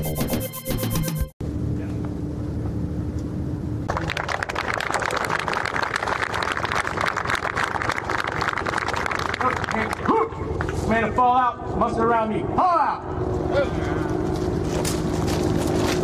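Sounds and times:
music jingle: 0.0 - 1.3
low outdoor rumble: 1.4 - 16.0
crowd applauding: 3.9 - 10.1.

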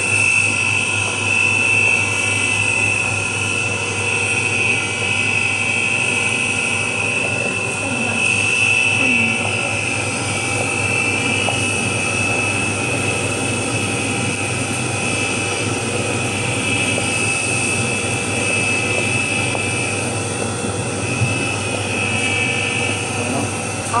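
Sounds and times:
colloid mill whining: 0.0 - 24.0.

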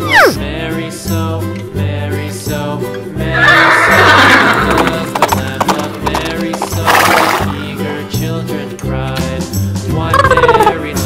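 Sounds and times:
horse whinnying: 0.0 - 0.4, 3.2 - 5.4
cheerful background music: 0.0 - 11.0
hooves clip-clopping: 4.6 - 7.6.

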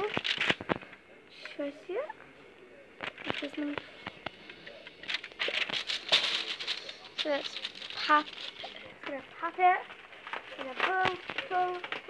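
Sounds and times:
cardboard crinkling and tearing: 5.0 - 12.0.

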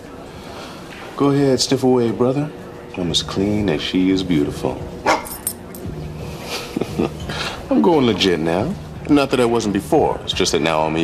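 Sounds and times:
dog barking: 5.0 - 5.4.

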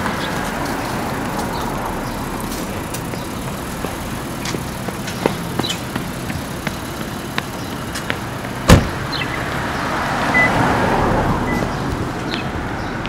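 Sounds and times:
car passing: 0.0 - 13.0
city street traffic: 0.0 - 13.0
loud thump: 8.7 - 9.0.

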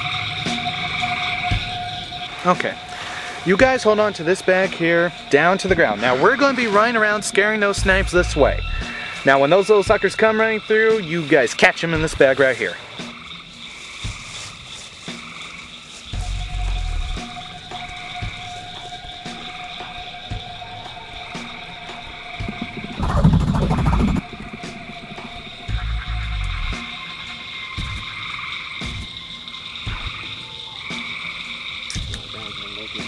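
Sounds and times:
frogs and insects trilling: 0.0 - 33.0
low heavy rumbling bursts: 22.4 - 26.8.

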